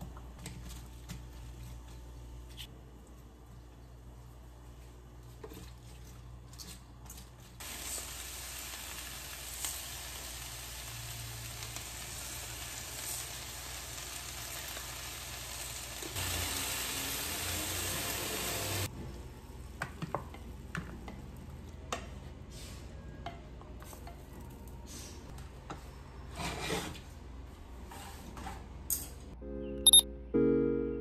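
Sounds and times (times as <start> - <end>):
food sizzling in a frying pan: 7.6 - 18.9.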